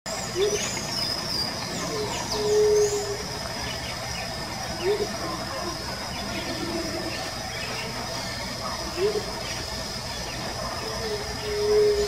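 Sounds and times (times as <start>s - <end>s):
high-pitched insect drone: 0.2s - 12.0s
faint low bird hooting: 1.8s - 12.0s.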